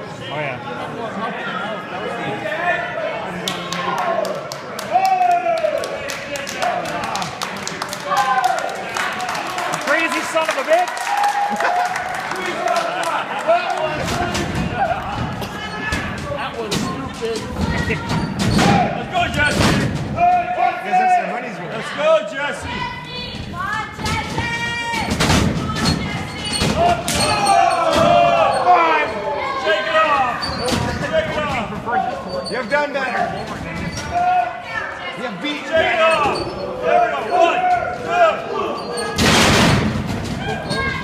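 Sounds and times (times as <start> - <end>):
audience shouting: 26.0 - 30.4.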